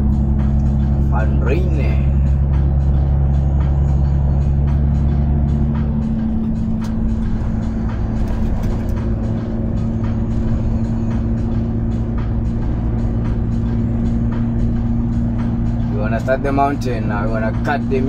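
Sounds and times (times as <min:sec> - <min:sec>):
music playing: 0:00.0 - 0:18.0
truck engine and road drone: 0:00.0 - 0:18.0.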